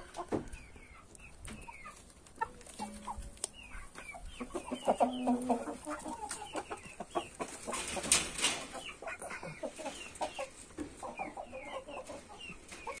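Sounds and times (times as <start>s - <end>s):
young chickens clucking and peeping: 0.0s - 13.0s.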